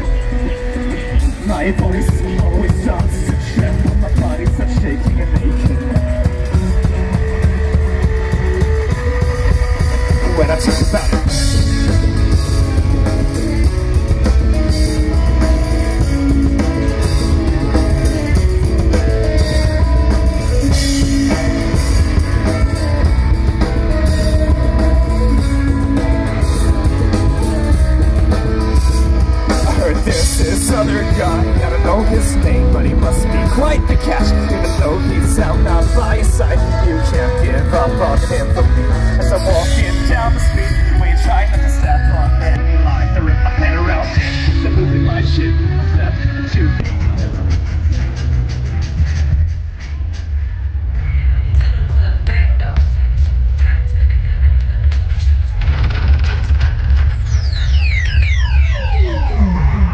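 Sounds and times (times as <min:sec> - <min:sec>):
electric guitars: 0:00.0 - 0:49.6
drum kit: 0:00.0 - 0:59.9
person singing into microphone: 0:29.4 - 0:46.9.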